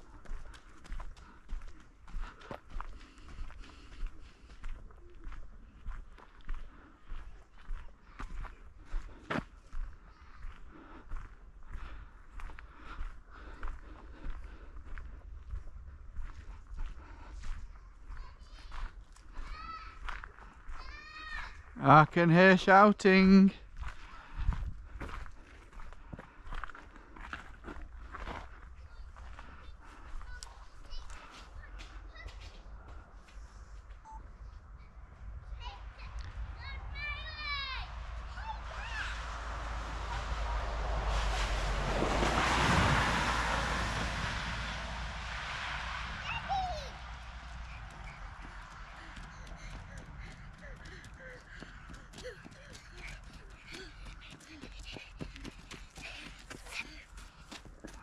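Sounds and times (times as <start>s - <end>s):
wind rumbling on microphone: 23.8s - 25.8s, 34.6s - 52.1s
rushing noise: 36.3s - 51.6s.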